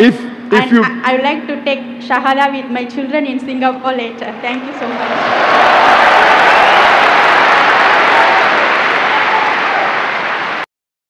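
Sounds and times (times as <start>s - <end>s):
large audience applauding: 4.6s - 10.7s.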